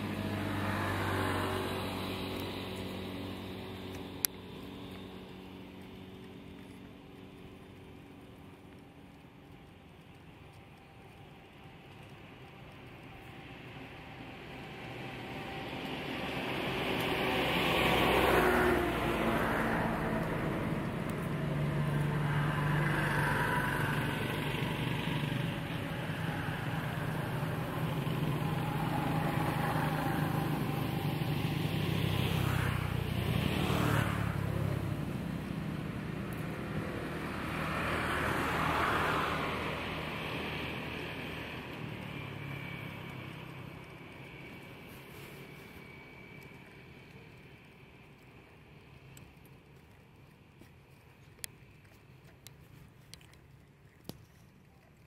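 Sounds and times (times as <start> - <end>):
vehicle engines passing: 0.0 - 55.0.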